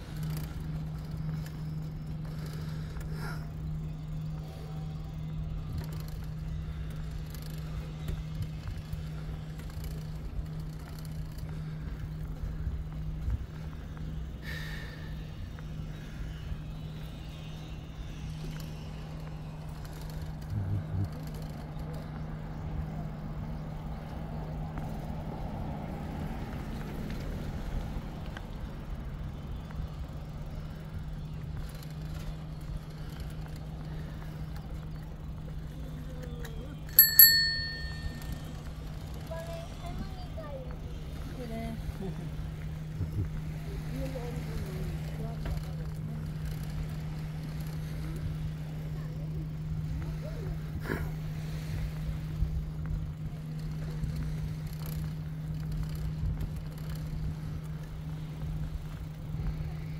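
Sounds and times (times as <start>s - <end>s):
bicycle riding noise with hum: 0.0s - 59.9s
bicycle bell ding: 36.9s - 38.6s.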